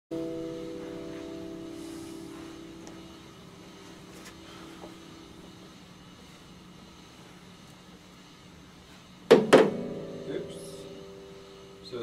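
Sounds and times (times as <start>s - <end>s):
acoustic guitar chord ringing: 0.1s - 5.8s, 9.4s - 12.0s.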